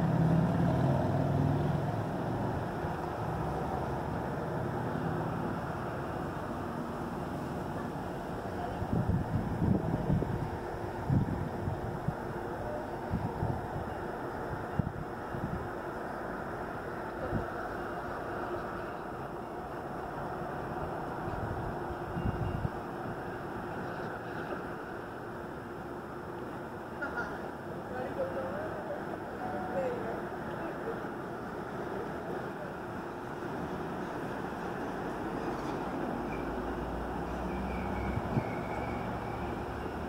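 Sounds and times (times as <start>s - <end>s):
traffic: 0.0s - 40.0s
wind buffeting microphone: 8.7s - 15.8s.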